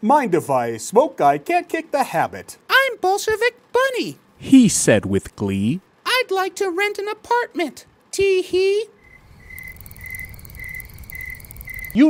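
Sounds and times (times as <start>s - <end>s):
crickets chirping: 8.9s - 12.0s.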